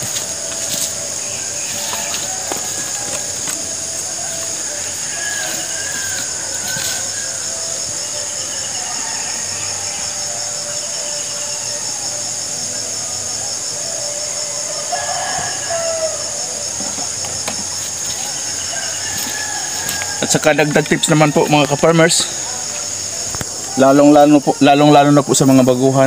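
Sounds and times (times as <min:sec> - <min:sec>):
insects chorus: 0:00.0 - 0:26.0.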